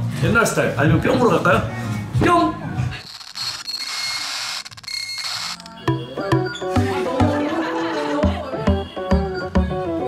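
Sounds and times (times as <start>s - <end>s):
music with plucked percussive notes: 5.7s - 10.0s.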